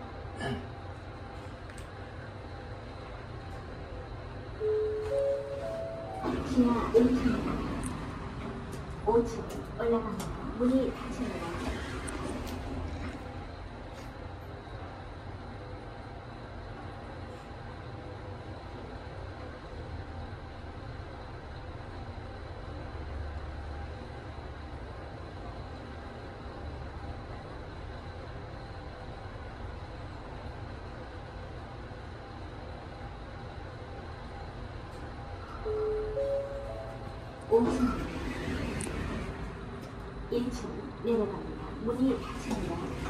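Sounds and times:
elevator rumble and hum: 0.0s - 43.0s
elevator arrival chime: 4.6s - 8.0s, 35.4s - 39.6s.

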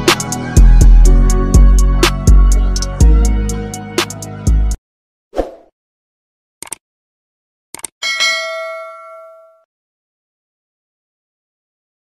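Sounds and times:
mouse-like double clicks: 7.8s - 8.0s
bright bell ding: 8.0s - 9.7s.

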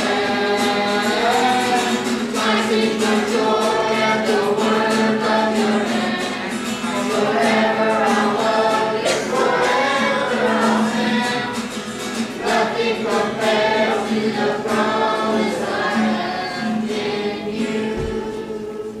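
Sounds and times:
acoustic guitar: 0.0s - 19.0s
choir singing worship song: 0.0s - 19.0s.

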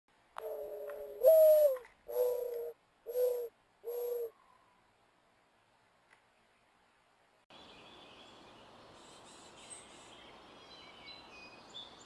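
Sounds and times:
mourning dove cooing: 0.4s - 4.4s.

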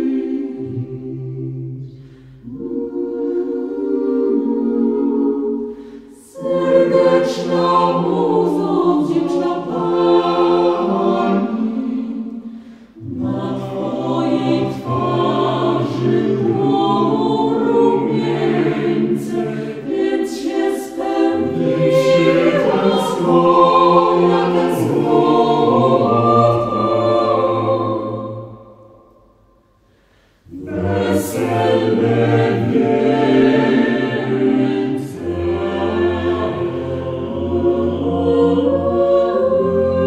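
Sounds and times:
vocal group singing in harmony: 0.0s - 40.0s.

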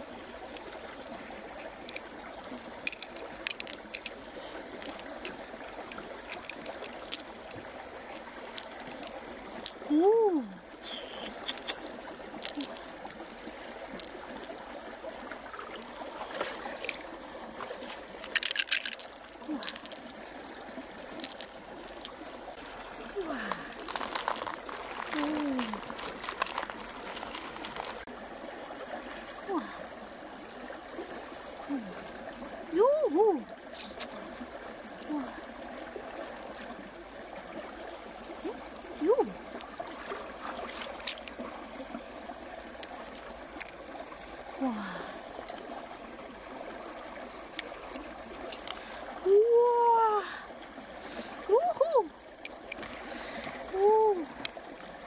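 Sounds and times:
trickle of water: 0.0s - 55.0s
pearls clicking together: 1.8s - 7.6s, 11.0s - 13.3s, 18.1s - 20.1s, 20.9s - 22.2s, 23.7s - 28.1s, 41.0s - 41.4s, 42.8s - 44.0s.

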